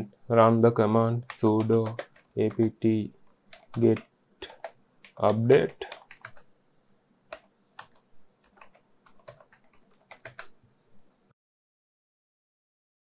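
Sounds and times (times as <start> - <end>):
computer keyboard typing: 1.2 - 2.7, 3.5 - 6.5, 7.3 - 10.6.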